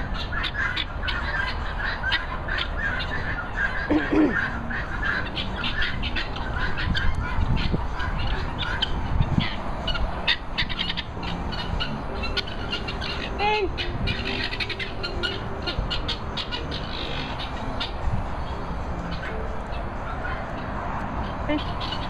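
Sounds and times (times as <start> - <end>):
birds chirping: 0.0 - 22.0
low rumble of wind: 0.0 - 22.0
bird squawking call: 0.1 - 9.0.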